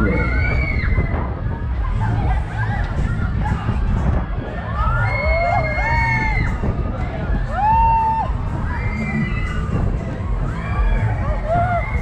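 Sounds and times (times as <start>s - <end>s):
people screaming and whooping: 0.0s - 12.0s
steady low rumble: 0.0s - 12.0s.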